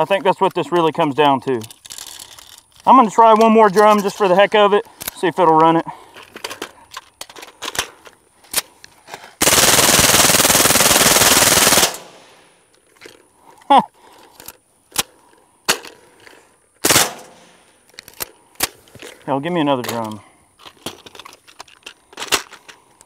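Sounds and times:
metallic gun handling clicks: 0.7 - 5.2
suppressed full-auto gunfire: 9.4 - 12.4, 16.8 - 17.6
loud gunshot report: 16.8 - 17.6.

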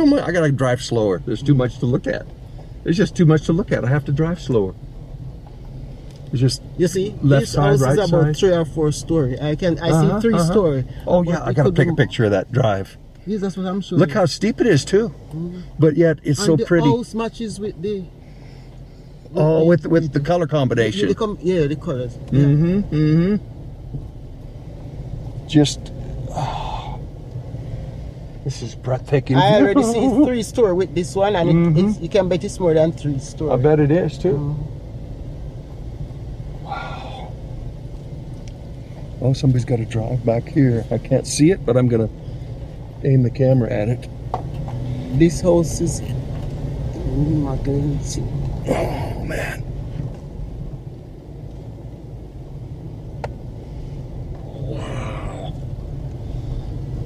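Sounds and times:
car engine and road rumble: 0.0 - 57.0.

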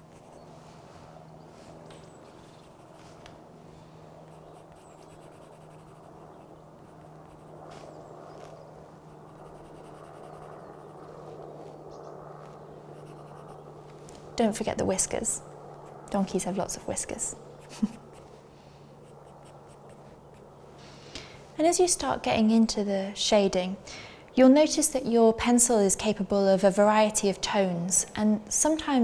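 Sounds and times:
faint steady hum: 0.0 - 29.0
pencil scratching on paper: 2.4 - 3.1, 4.3 - 8.5, 9.1 - 11.2, 12.9 - 13.6, 19.0 - 20.2.

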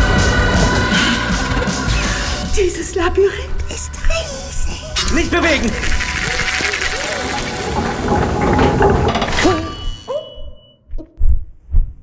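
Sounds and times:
trailer music: 0.0 - 10.3.

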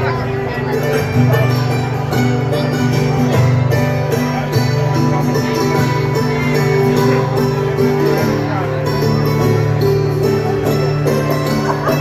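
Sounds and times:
hammered dulcimer dance tune: 0.0 - 12.0.

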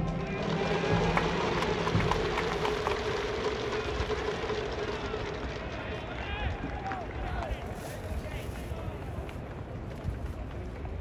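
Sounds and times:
crowd noise: 0.0 - 11.0
sharp claps: 0.2 - 7.8.

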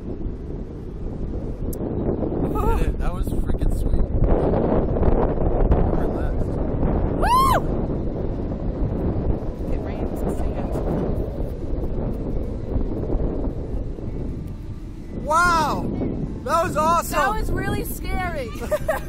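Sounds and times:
wind buffeting microphone: 0.0 - 19.0
rider whooping: 7.2 - 7.8.

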